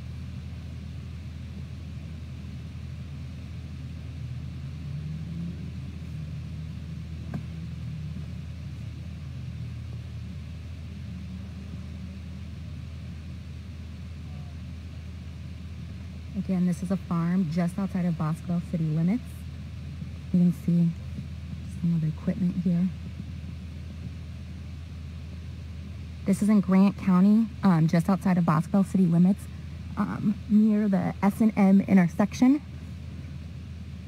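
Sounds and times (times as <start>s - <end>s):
steady low rumble: 0.0s - 34.0s.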